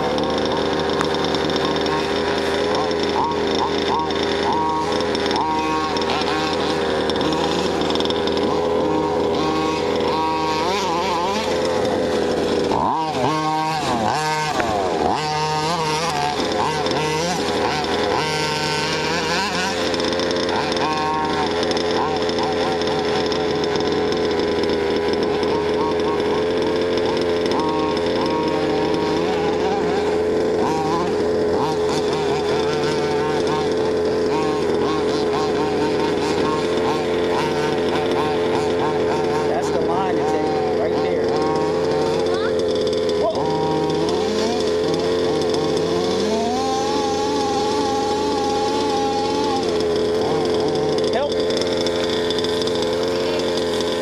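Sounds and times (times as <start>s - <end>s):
two-stroke model car engine revving: 0.0s - 54.0s.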